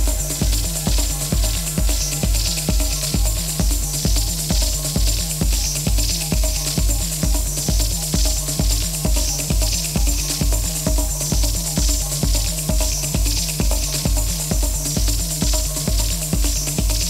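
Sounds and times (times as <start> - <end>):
high percussion ticking: 0.0 - 17.0
repeating bass line: 0.0 - 17.0
techno kick drum: 0.0 - 17.0.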